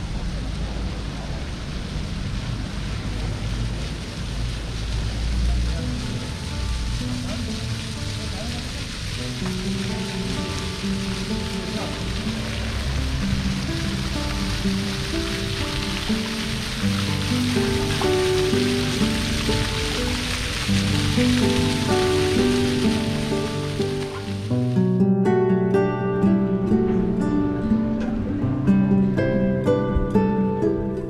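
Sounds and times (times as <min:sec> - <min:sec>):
fountain water splashing on paving: 0:00.0 - 0:31.0
background music with held notes: 0:05.9 - 0:31.0.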